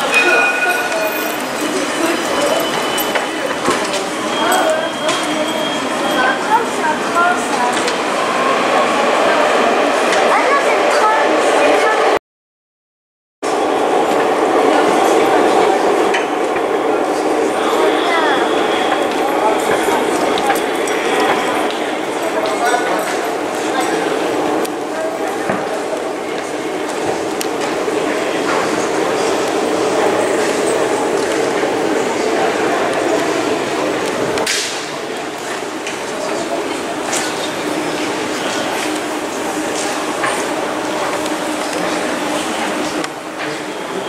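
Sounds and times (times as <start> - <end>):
echoing station concourse din: 0.0 - 12.2, 13.4 - 44.0.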